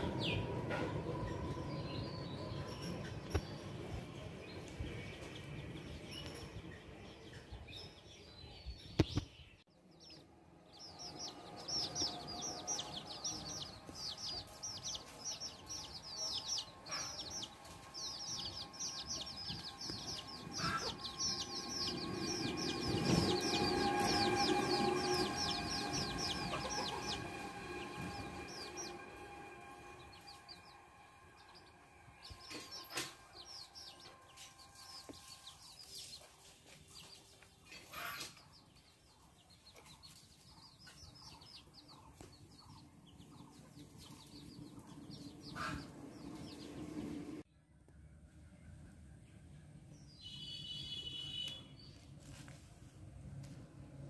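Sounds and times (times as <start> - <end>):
birds chirping: 0.0 - 52.2
low sound: 10.3 - 35.7.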